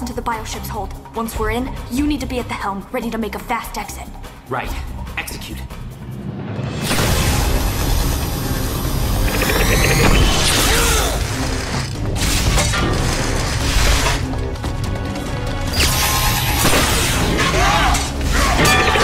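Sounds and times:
dramatic music score: 0.0s - 19.0s.

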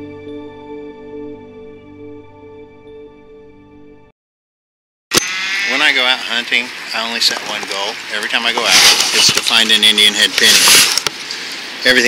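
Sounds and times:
background music: 0.0s - 4.1s
man talking: 5.7s - 10.9s, 11.8s - 12.0s.

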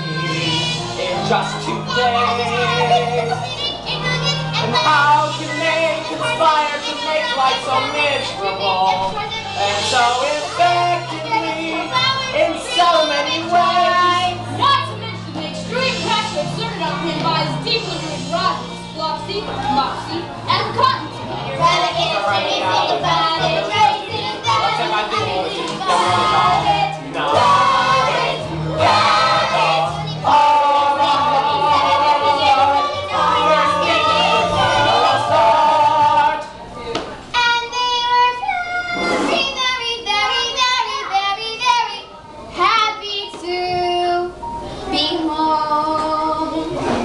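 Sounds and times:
children singing: 0.0s - 36.6s
instrumental accompaniment: 0.0s - 37.6s.

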